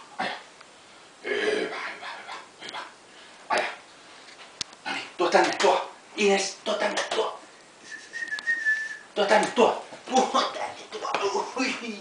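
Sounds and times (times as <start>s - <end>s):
person whistling a high note: 7.8s - 9.1s.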